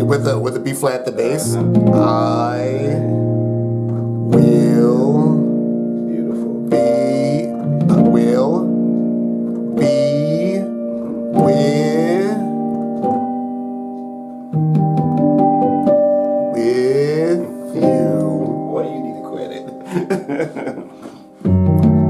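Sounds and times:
piano gospel chords: 0.0 - 22.0
person singing: 1.2 - 3.2, 4.3 - 8.8, 9.7 - 12.8, 16.4 - 22.0.

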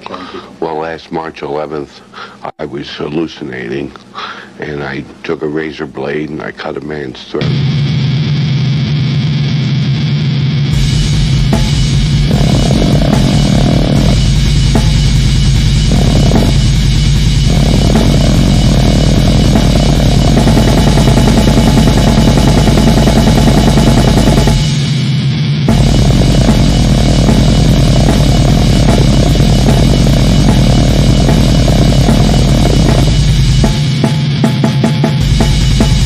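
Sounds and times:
heavy metal music: 7.4 - 36.0
fast drum kit: 10.7 - 36.0.

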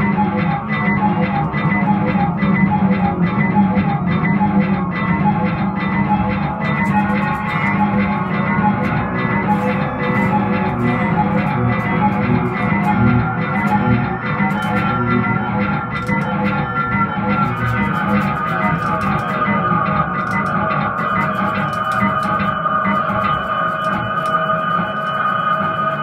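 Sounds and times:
distorted electric guitar: 0.0 - 26.0
high sustained guitar note: 0.0 - 26.0
sharp ticks: 0.0 - 26.0.

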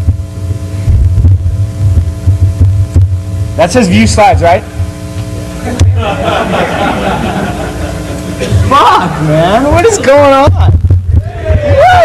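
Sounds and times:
faint steady buzz: 0.0 - 12.0
low electrical hum: 0.0 - 12.0.

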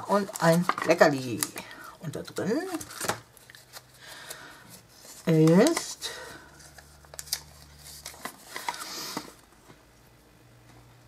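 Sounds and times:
paper rustling: 2.3 - 9.4.

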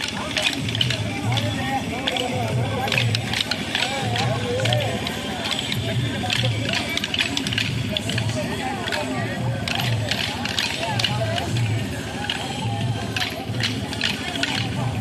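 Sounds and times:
dance sticks clacking: 0.0 - 15.0
music with singing: 0.0 - 15.0.

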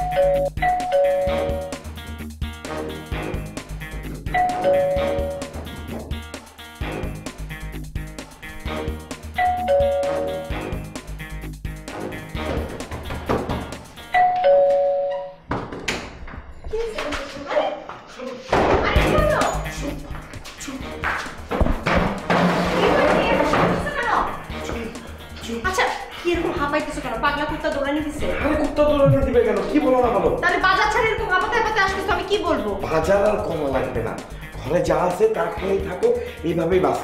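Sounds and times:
doorbell ding-dong chime: 0.0 - 1.7, 4.3 - 5.5, 9.4 - 10.5, 14.1 - 15.4
background music with steady beat: 0.0 - 14.9, 18.0 - 37.0.

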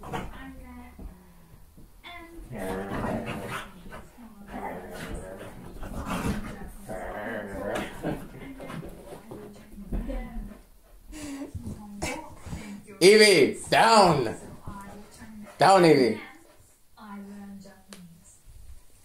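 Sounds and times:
dog growling and whining: 2.4 - 3.8, 4.5 - 8.5.

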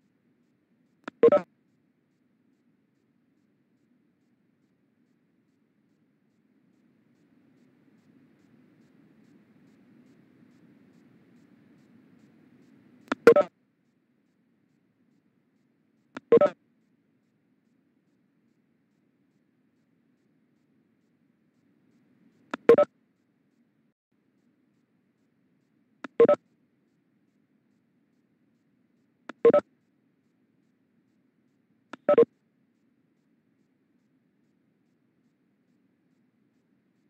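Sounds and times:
short electronic beep: 1.2 - 1.4, 13.3 - 13.5, 16.3 - 16.6, 26.2 - 26.4.

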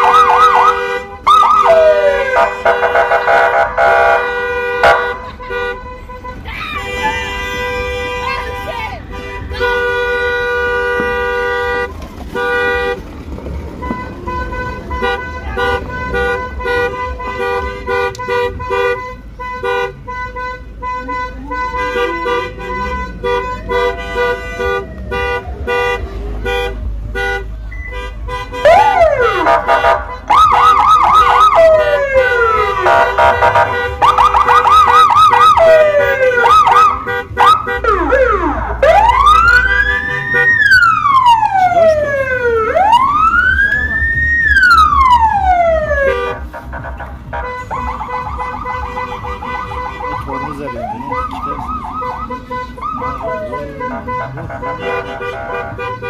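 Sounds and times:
car horn blasts: 0.0 - 13.0, 13.8 - 43.5, 44.5 - 56.0.

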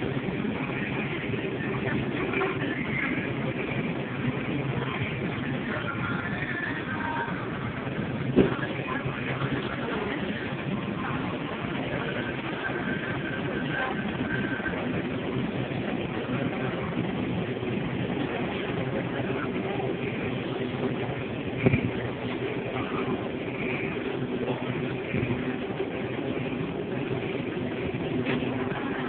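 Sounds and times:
indistinct shoppers' voices: 0.0 - 29.0
refrigerated display cases humming: 0.0 - 29.0
ventilation hum: 0.0 - 29.0.

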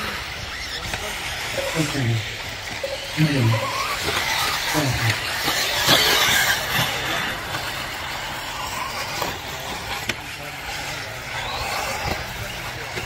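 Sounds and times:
rc car motors buzzing: 0.0 - 13.0.

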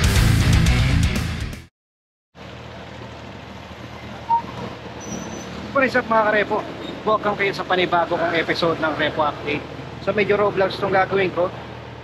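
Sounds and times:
city street traffic: 2.3 - 12.0
short higher tone: 4.2 - 4.6.

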